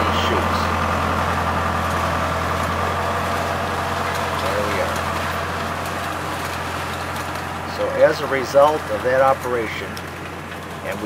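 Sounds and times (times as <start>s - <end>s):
machinery pushing through vine leaves: 0.0s - 11.0s
tractor machinery running: 0.0s - 11.0s.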